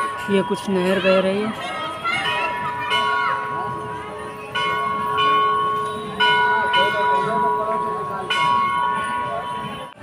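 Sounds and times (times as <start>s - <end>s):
temple bell ringing: 0.0s - 10.0s.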